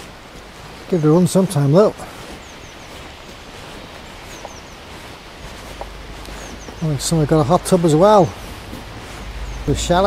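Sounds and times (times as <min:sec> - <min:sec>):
river rushing: 0:00.0 - 0:10.0
faint bird chirps: 0:02.4 - 0:03.1, 0:03.9 - 0:05.0, 0:05.7 - 0:07.0, 0:09.1 - 0:09.9
low rumble: 0:08.4 - 0:10.0.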